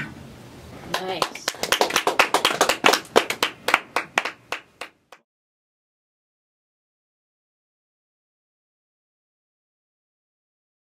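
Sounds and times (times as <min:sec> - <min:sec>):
people clapping: 0:00.9 - 0:05.2.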